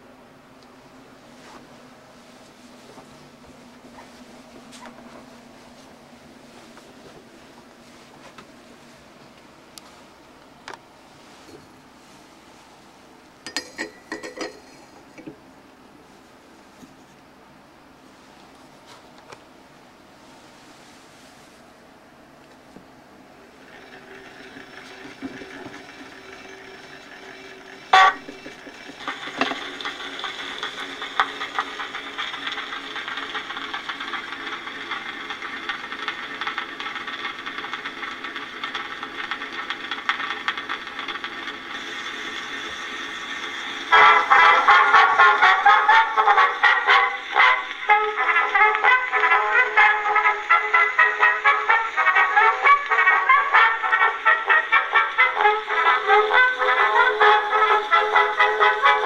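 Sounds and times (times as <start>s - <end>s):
phonograph surface hiss: 0.0s - 59.0s
brass recording through horn: 27.9s - 28.4s, 43.9s - 59.0s.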